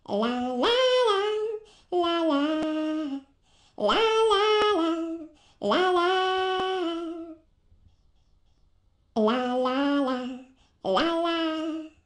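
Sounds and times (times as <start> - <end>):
woman singing wordless melody: 0.0 - 7.5, 9.2 - 12.0.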